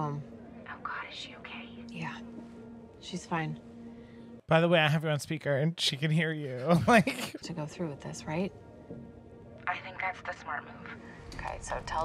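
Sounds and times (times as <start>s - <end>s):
person speaking: 6.4s - 7.4s.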